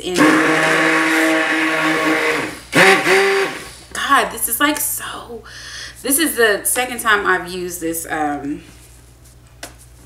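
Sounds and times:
stick blender motor whine: 0.0 - 3.8.

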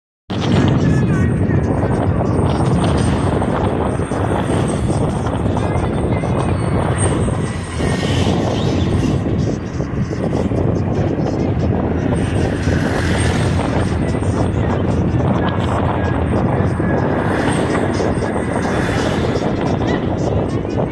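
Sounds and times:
faint voices: 0.3 - 20.9
street traffic rumble: 0.3 - 20.9.

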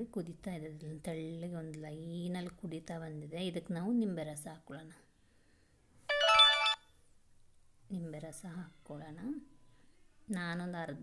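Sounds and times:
short electronic melody: 6.1 - 6.8.

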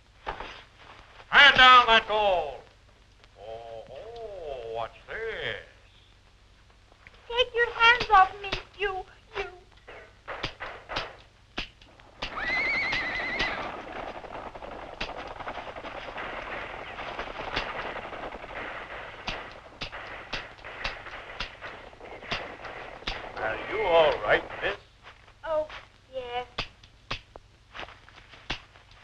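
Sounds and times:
steady rush of noise: 0.0 - 29.0
gunshots: 9.9 - 24.8
horse whinnying: 12.2 - 14.0.

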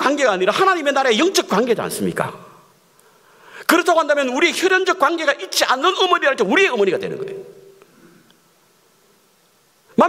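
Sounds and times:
man speaking: 0.0 - 2.7, 3.6 - 7.7
low even hiss: 0.0 - 10.0.

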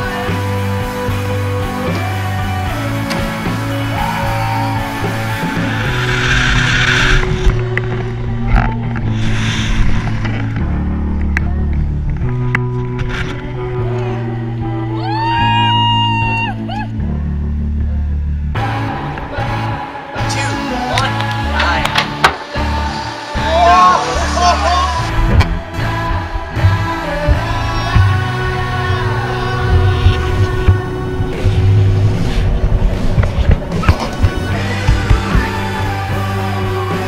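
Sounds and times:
background music with bass line: 0.0 - 37.0.

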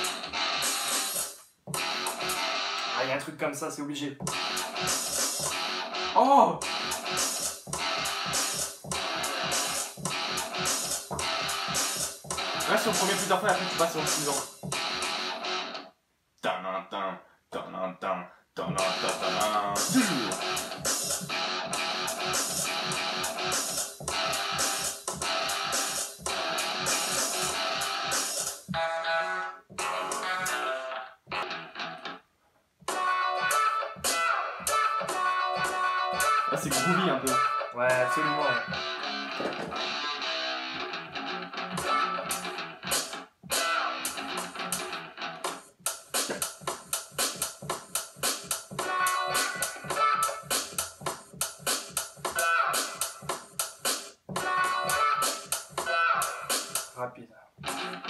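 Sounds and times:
rock loops with guitar: 0.0 - 3.0, 4.2 - 15.8, 18.8 - 29.2, 32.9 - 47.6
fast choppy repeated hits: 18.8 - 28.8.

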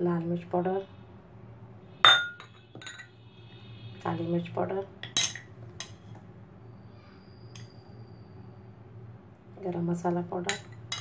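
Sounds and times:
dishes clinking together: 2.1 - 3.2, 10.5 - 11.0.

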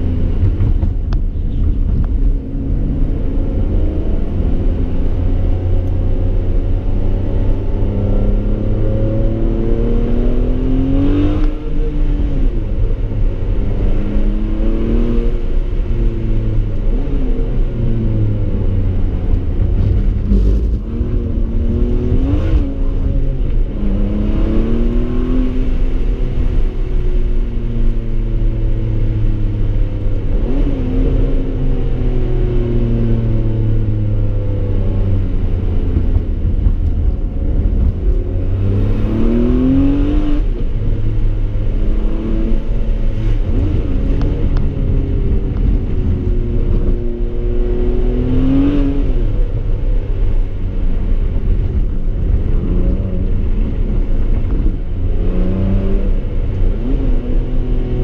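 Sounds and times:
car engine accelerating hard: 0.0 - 58.0.

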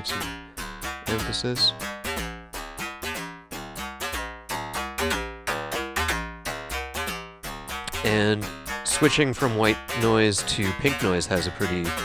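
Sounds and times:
synthesized plucked string notes: 0.0 - 12.0.

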